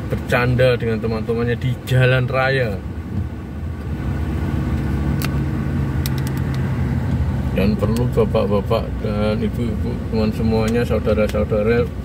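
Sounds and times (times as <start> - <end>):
vehicle engine and tyres on wet road: 0.0 - 12.0.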